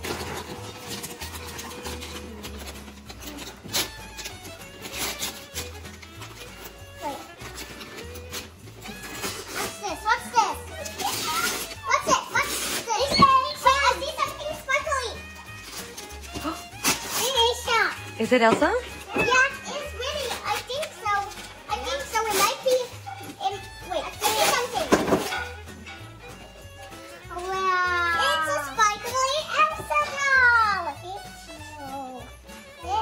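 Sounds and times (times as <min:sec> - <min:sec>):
wrapping paper crinkling and tearing: 0:00.0 - 0:18.2, 0:19.3 - 0:25.4
young children's voices and squeals: 0:09.8 - 0:15.3, 0:19.0 - 0:24.9, 0:27.3 - 0:32.2.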